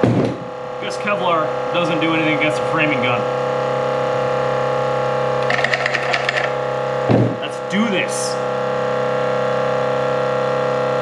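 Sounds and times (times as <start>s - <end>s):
steady multi-tone hum: 0.0s - 11.0s
rapid clicking and rattling: 5.4s - 6.6s.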